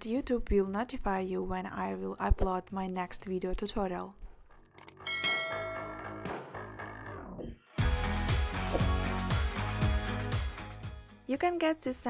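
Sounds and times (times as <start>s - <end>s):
bright bell chime: 5.1s - 6.3s.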